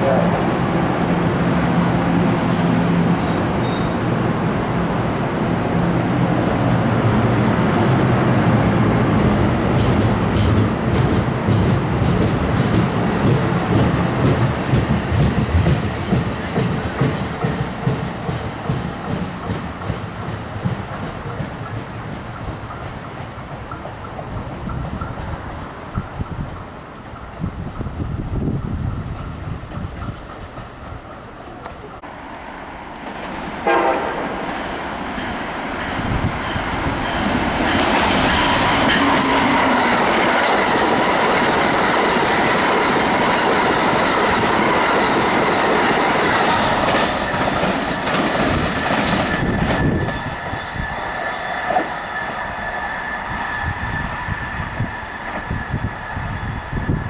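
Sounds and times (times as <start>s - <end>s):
train passing on rails: 0.0s - 57.0s
train horn blast: 33.6s - 34.4s.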